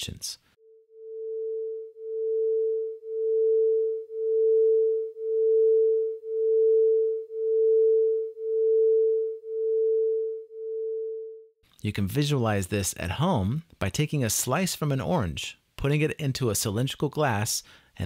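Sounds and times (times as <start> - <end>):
beating sine tones: 0.6 - 11.5.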